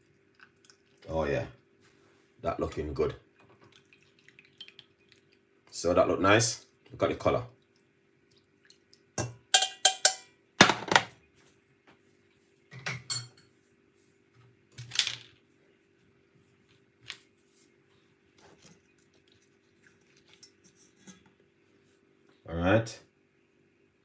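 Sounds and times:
metal strainer and pan clinking: 0:09.5 - 0:10.3.

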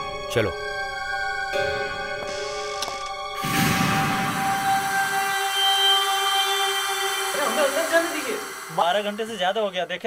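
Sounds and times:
sustained synthesizer chord: 0:03.3 - 0:09.4.

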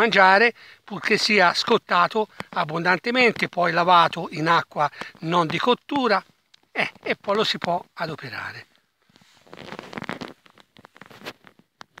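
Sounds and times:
rustling and crackling: 0:01.0 - 0:12.0.

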